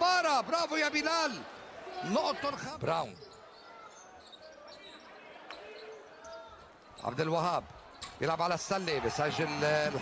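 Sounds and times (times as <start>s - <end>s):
faint crowd voices: 0.0s - 10.0s.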